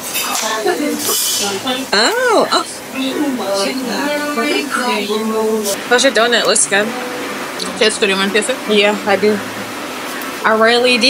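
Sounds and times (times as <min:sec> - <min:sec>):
background voices: 0:00.0 - 0:11.0.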